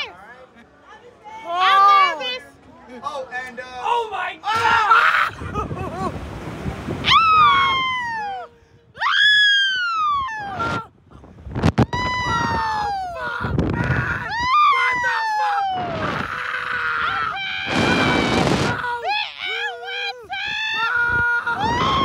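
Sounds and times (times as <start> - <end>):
women screaming on a ride: 7.0 - 10.9, 11.9 - 22.0.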